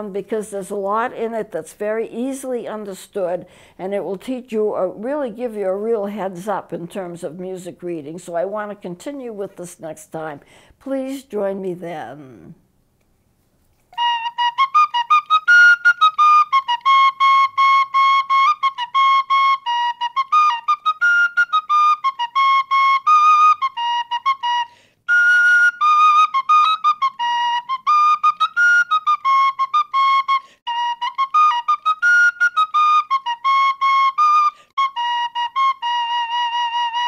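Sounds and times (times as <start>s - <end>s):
flute melody: 13.9s - 37.0s
penny whistle tune: 14.0s - 37.0s.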